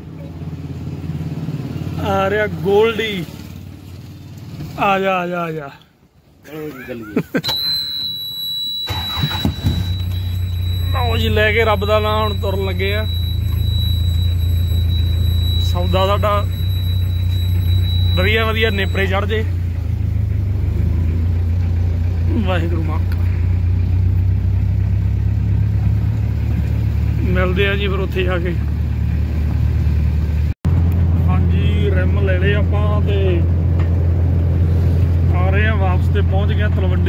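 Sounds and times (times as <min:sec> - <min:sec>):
car engine cranking and idling: 0:00.0 - 0:05.1, 0:07.4 - 0:37.0
high-pitched whine: 0:07.5 - 0:19.8.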